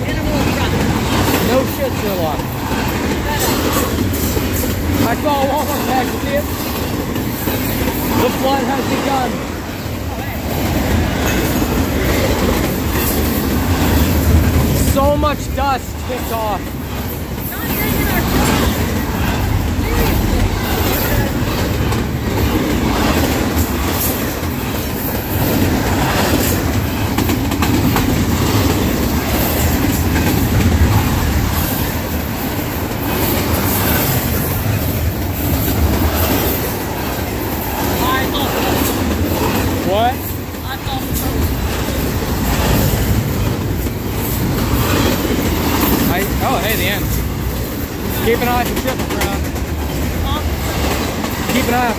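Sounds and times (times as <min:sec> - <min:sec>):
freight train wheels rumbling: 0:00.0 - 0:51.9.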